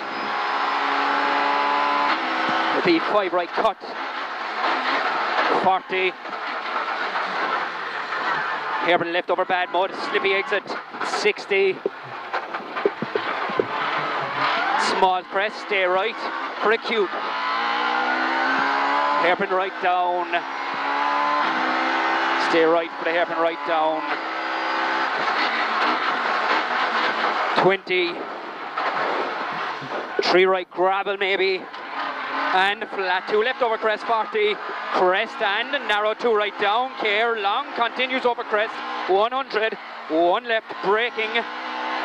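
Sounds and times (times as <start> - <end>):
car engine running hard: 0.0 - 42.0
road and tyre noise: 0.0 - 42.0.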